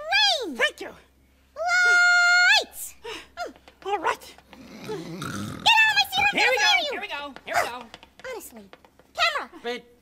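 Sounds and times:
low rough growling grumble: 4.5s - 5.7s.

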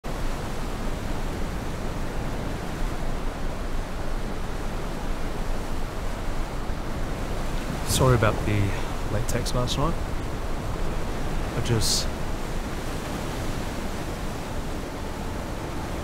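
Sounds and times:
ocean surf: 0.0s - 16.0s
wind: 0.0s - 16.0s.

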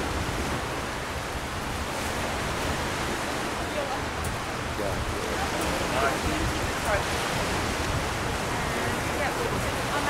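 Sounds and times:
small waves breaking on shore: 0.0s - 10.0s
wind: 0.0s - 10.0s.

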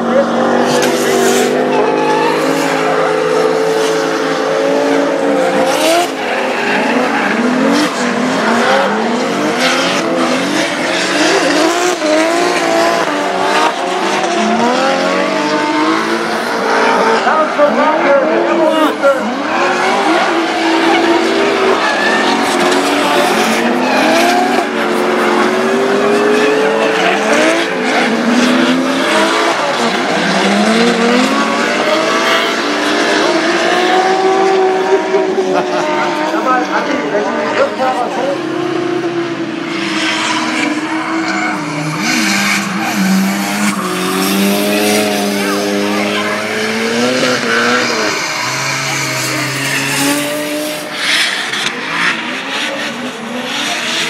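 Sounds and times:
car engines revving hard: 0.0s - 54.0s
tyres squealing and skidding: 0.0s - 54.0s.

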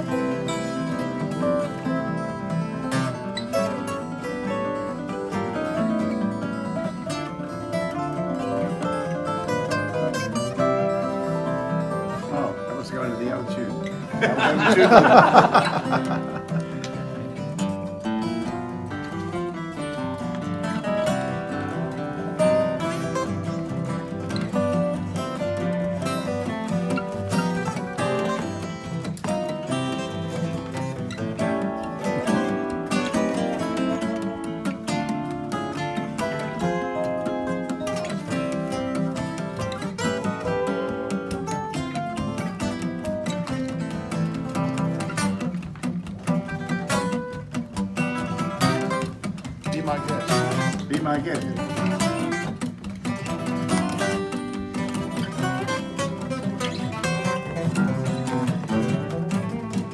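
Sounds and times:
acoustic guitars playing: 0.0s - 59.9s.

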